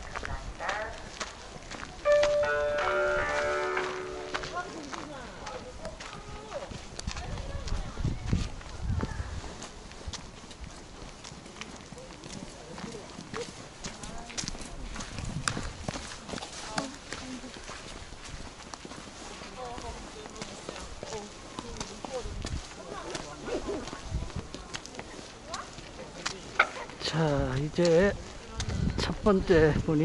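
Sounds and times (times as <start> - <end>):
chatter of visitors: 0.0 - 30.0
footsteps on sandy path: 0.0 - 30.0
falling pitched tones: 2.1 - 4.6.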